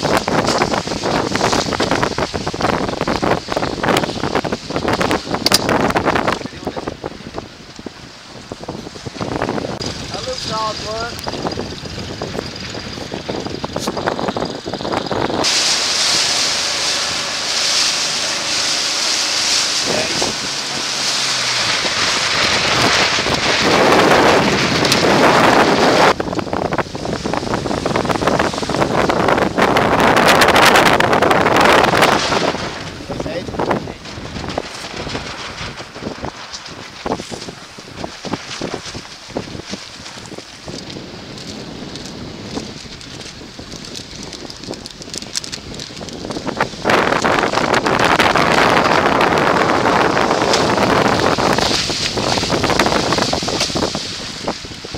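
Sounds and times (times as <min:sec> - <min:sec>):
wind buffeting microphone: 0:00.0 - 0:54.9
motor hum: 0:09.8 - 0:26.8.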